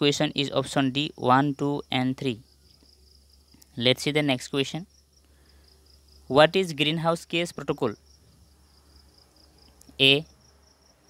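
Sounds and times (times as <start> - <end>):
insect trilling: 0.0 - 11.0.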